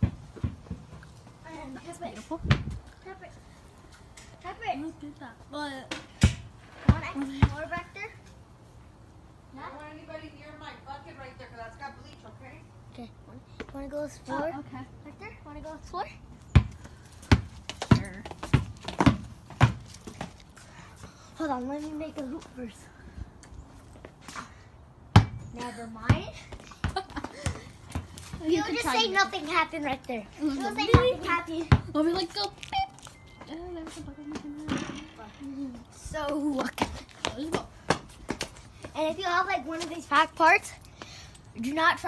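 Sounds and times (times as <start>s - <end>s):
basketball bouncing on concrete: 0.0s - 1.0s, 1.8s - 2.9s, 5.8s - 8.0s, 16.4s - 21.2s, 25.1s - 29.6s, 30.5s - 32.5s, 33.4s - 40.0s.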